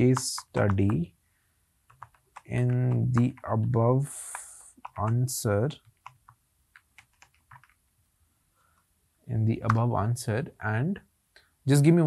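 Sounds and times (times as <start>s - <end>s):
faint keyboard typing: 0.0s - 1.1s, 1.8s - 8.0s, 8.7s - 10.0s.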